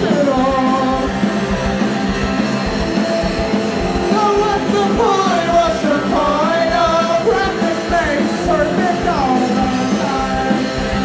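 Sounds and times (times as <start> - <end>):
man singing: 0.0 - 1.2, 4.0 - 11.0
drums: 0.0 - 11.0
electric guitars: 0.0 - 11.0.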